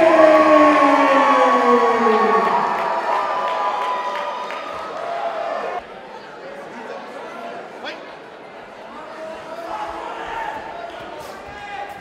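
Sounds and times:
announcer's amplified voice: 0.0s - 3.0s
crowd cheering: 0.0s - 7.6s, 8.6s - 12.0s.

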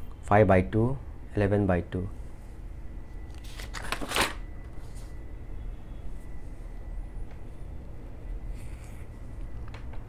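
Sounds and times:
paper page turning: 3.3s - 5.1s.

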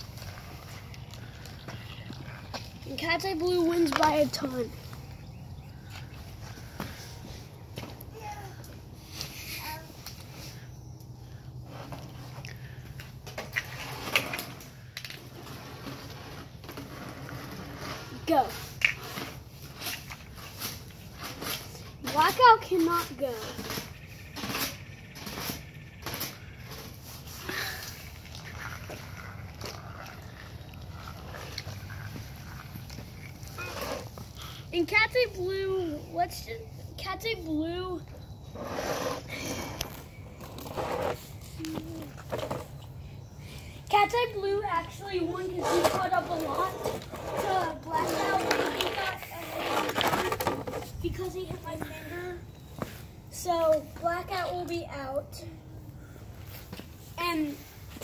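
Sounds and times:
child talking: 2.8s - 4.8s, 8.1s - 8.7s, 9.5s - 10.0s, 18.1s - 18.7s, 22.0s - 23.6s, 34.6s - 38.1s, 41.6s - 42.2s, 43.9s - 50.3s, 50.9s - 52.5s, 53.3s - 55.9s, 57.2s - 57.7s.

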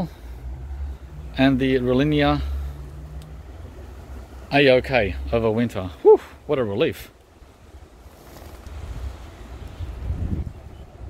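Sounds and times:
wind buffeting microphone: 7.3s - 11.0s.

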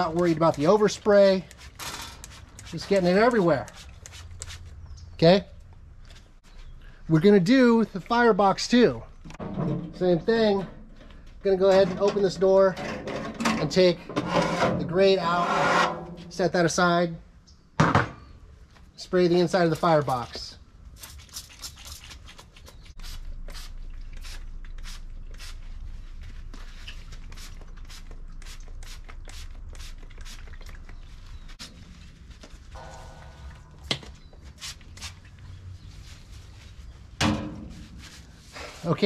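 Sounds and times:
spray bottle squirting: 1.4s - 4.8s.

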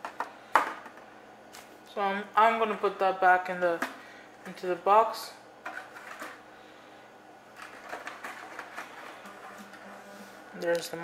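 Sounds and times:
packaging clicks and scrapes: 7.6s - 9.9s.

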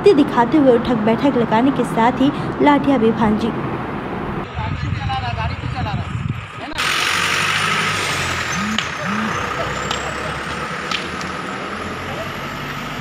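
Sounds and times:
vehicle engine idling: 4.5s - 13.0s
brief voices: 6.6s - 10.6s.

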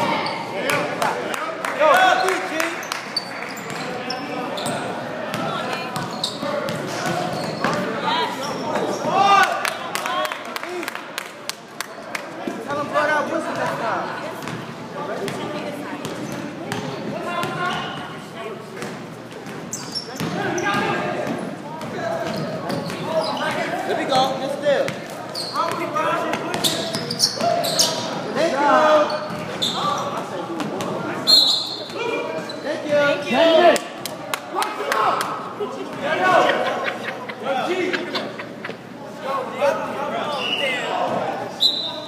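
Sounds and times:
sneaker squeaks: 0.0s - 0.6s, 2.2s - 9.2s, 16.0s - 18.2s, 18.8s - 28.2s, 28.8s - 30.3s, 31.2s - 33.0s, 40.2s - 42.0s
shouting and chatter: 0.0s - 14.2s, 19.8s - 42.0s.

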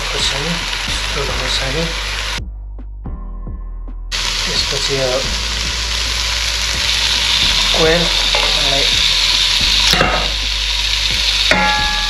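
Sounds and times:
person speaking: 0.0s - 2.1s, 4.3s - 6.1s, 6.8s - 9.2s
meat sizzling in hot fat: 0.0s - 2.4s, 4.2s - 12.0s.

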